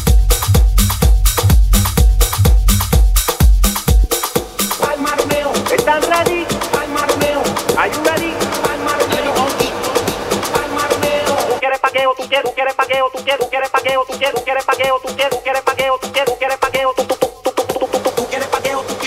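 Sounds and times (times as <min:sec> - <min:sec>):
tech-house dance music: 0:00.0 - 0:19.0.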